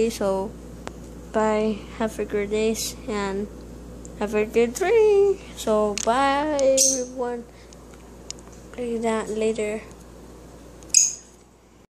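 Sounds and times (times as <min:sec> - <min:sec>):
faint room hum: 0:00.0 - 0:11.9.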